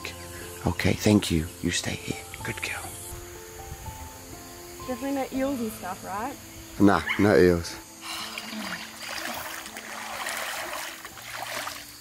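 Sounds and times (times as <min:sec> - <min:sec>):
creek water splashing: 0:06.8 - 0:12.0.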